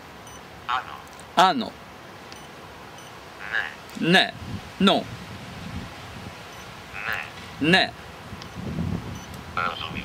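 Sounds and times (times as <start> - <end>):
man speaking softly: 9.6 - 10.0.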